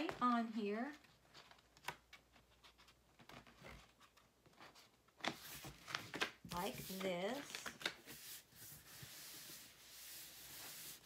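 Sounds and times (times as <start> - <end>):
paper rustling: 0.0 - 11.0
hand rubbing paper swish: 6.5 - 11.0.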